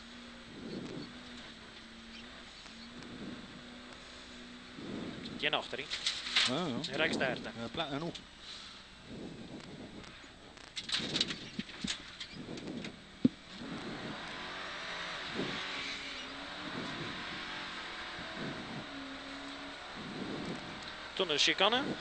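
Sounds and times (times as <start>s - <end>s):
engine revs rising and falling: 0.0s - 5.9s, 12.3s - 22.0s.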